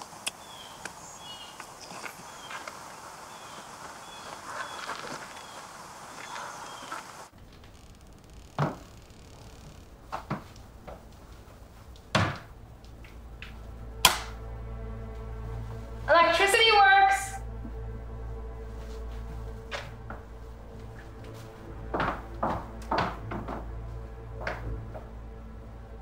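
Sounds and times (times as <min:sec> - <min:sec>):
low steady drone: 0:00.0 - 0:26.0
faint bird chirps: 0:00.4 - 0:09.8.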